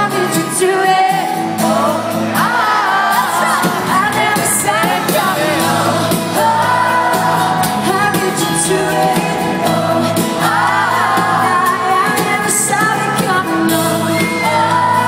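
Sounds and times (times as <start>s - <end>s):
arena crowd: 0.0s - 15.0s
lead vocalist singing: 0.0s - 15.0s
strummed acoustic guitars: 0.0s - 15.0s.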